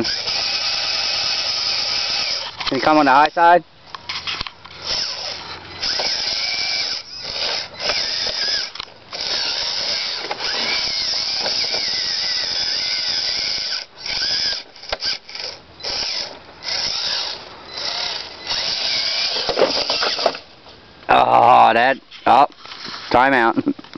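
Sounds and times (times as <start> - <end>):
electric motor and gears whining: 0.0 - 20.6.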